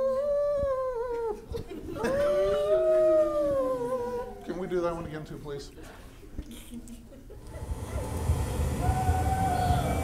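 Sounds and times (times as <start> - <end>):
dog howling over speakers: 8.8 - 10.0.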